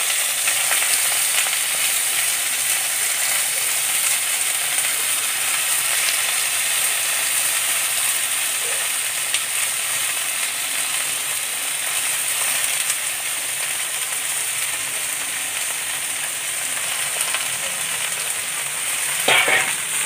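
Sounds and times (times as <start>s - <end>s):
faint crackles: 0.0s - 20.0s
vegetables sizzling in a wok: 0.0s - 20.0s.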